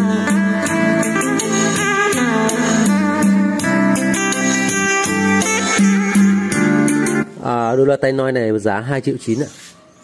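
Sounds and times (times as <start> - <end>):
guitar music through speakers: 0.0 - 7.4
man talking: 7.3 - 9.7.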